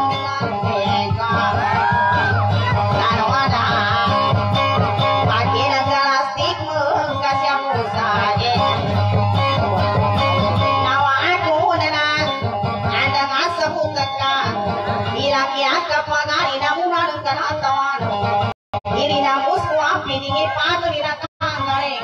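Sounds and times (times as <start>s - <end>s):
guitar playing: 0.0s - 15.6s.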